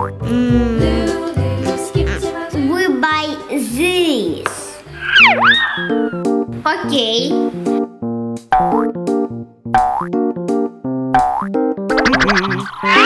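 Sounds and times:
cartoon boing sound effects: 0.0s - 0.8s, 5.0s - 6.1s, 8.5s - 8.9s, 9.8s - 10.2s, 11.1s - 13.0s
bouncy synth children's music: 0.0s - 13.0s.

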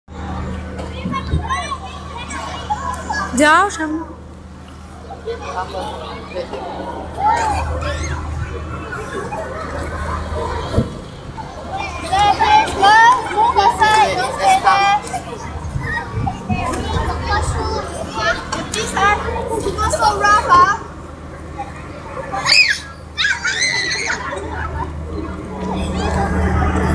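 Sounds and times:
children calling and chattering: 0.1s - 26.9s
steady low hum: 0.1s - 26.9s.

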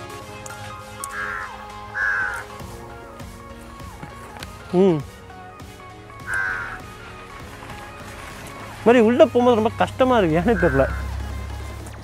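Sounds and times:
background music: 0.0s - 12.0s
crow cawing: 0.9s - 2.7s, 6.2s - 7.1s, 10.3s - 11.1s.

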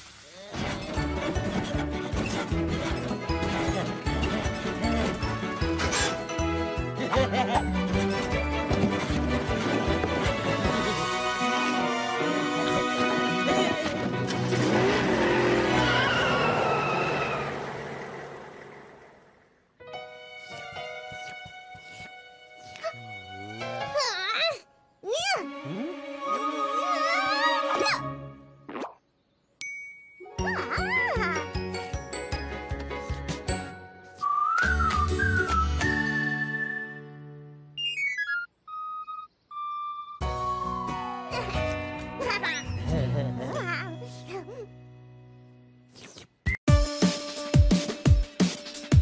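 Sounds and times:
music: 0.5s - 15.9s, 19.8s - 28.6s, 30.2s - 37.8s, 40.2s - 46.0s, 46.7s - 49.0s
cartoon vehicle skidding off: 13.9s - 19.5s.

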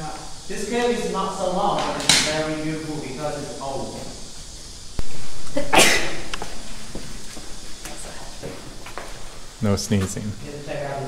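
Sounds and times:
people talking: 0.0s - 4.3s, 9.6s - 11.0s
loud sneeze: 5.6s - 6.4s.

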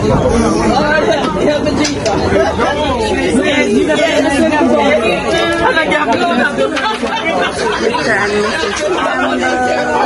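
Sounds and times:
people talking over one another: 0.0s - 10.0s.

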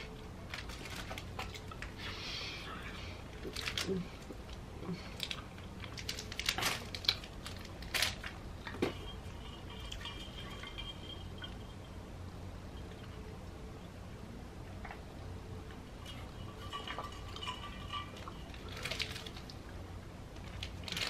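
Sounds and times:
plastic wrapper crinkling: 0.5s - 1.9s, 3.3s - 4.6s, 5.2s - 8.8s, 17.8s - 19.6s, 20.4s - 21.0s.

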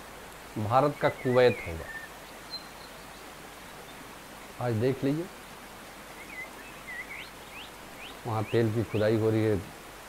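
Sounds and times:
running water hiss: 0.0s - 10.0s
small birds chirping: 0.5s - 9.7s.

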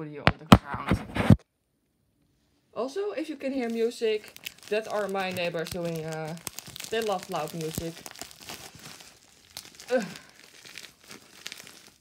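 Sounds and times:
plastic packaging crinkling: 3.4s - 12.0s.

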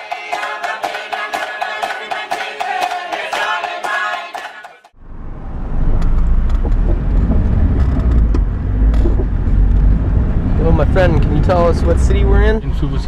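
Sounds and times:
music: 0.0s - 4.9s
car engine and road noise: 4.9s - 13.0s.

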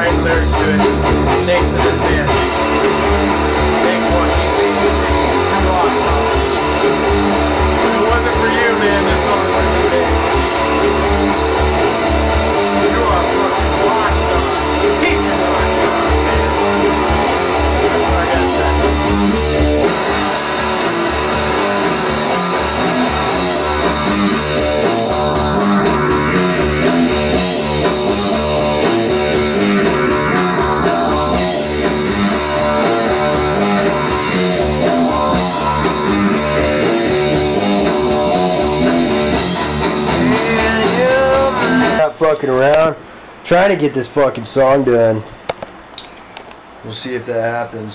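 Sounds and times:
guitar-driven rock music: 0.0s - 42.2s.

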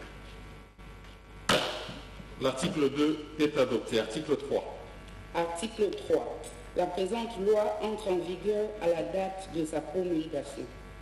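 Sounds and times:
sharp knock with ringing tail: 1.5s - 2.0s.

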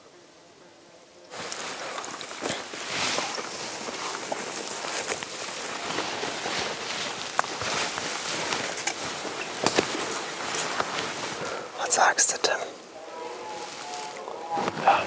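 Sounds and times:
twigs snapping: 1.3s - 11.5s
rustling of leaves and stems: 1.3s - 15.0s.

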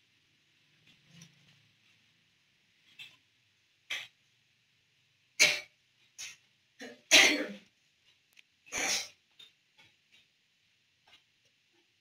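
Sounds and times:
person coughing: 7.1s - 7.6s.

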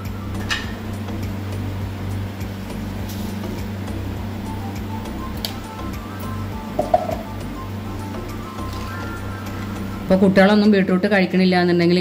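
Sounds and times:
gas stove hum and hiss: 0.0s - 12.0s.

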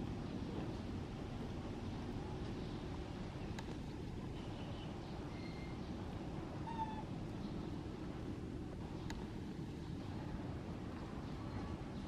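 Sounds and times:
low background rumble: 0.0s - 12.0s
macaque squeak-like coo: 6.6s - 7.1s.

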